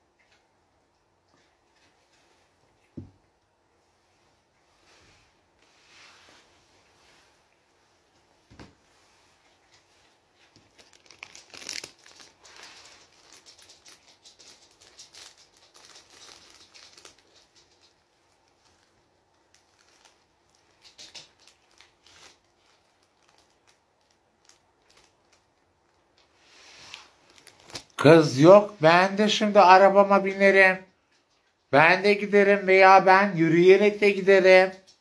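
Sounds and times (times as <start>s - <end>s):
crinkling and rustling by hand: 0.0s - 35.0s.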